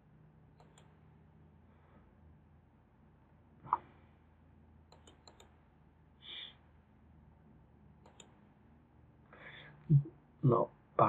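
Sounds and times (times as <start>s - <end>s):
faint low hum: 0.0s - 11.0s
computer mouse clicks: 0.6s - 1.0s, 4.9s - 5.6s, 8.0s - 8.4s.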